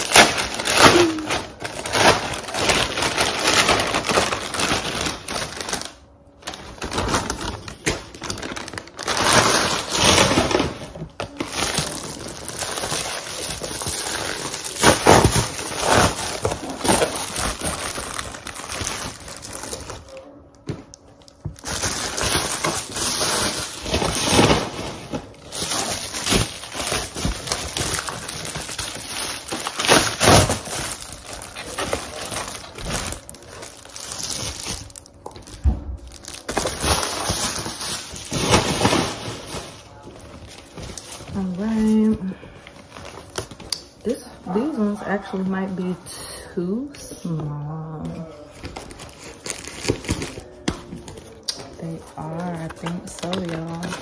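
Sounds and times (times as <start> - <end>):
packaging crinkling and rustling: 0.0 - 46.0, 46.9 - 54.0.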